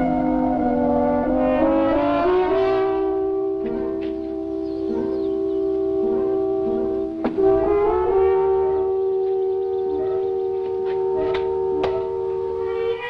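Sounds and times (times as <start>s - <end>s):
orchestral horn chords: 0.0s - 13.0s.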